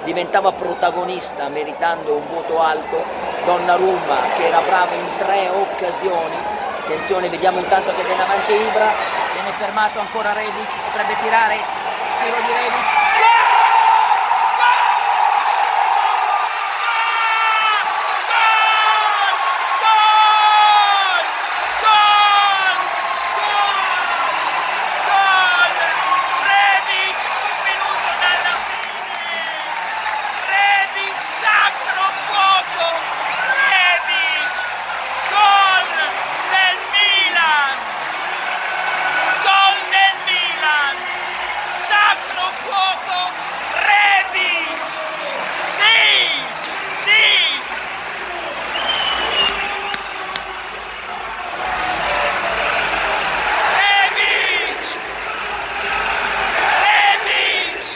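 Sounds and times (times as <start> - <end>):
stadium crowd cheering: 0.0 - 57.9
man screaming and yelling: 16.8 - 24.4.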